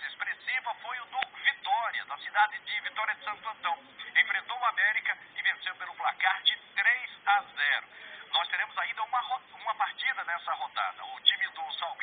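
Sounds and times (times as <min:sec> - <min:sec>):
reporter talking: 0:00.0 - 0:12.0.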